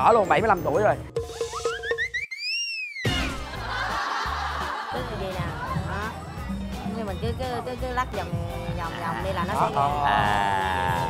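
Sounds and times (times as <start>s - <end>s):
background music: 0.0s - 2.4s, 3.0s - 11.0s
gliding whistle-like tone: 1.3s - 3.2s.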